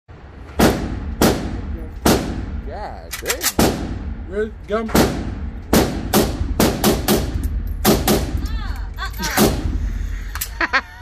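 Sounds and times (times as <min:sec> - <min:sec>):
gunshots with echo: 0:00.6 - 0:02.6, 0:04.9 - 0:08.4.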